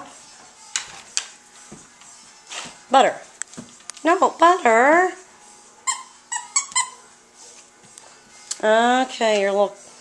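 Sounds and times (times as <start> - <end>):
squeaky toy squeaks: 5.8 - 7.1.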